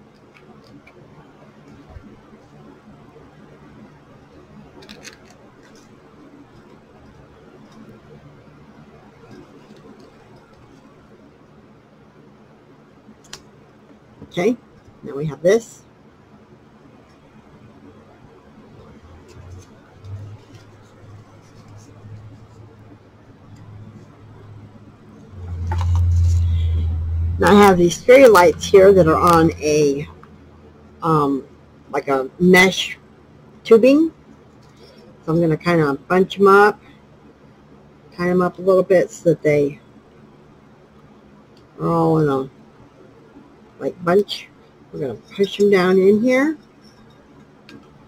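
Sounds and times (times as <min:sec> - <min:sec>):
low steady hum: 0:00.0 - 0:48.0
low rumble of handling noise: 0:16.7 - 0:31.9.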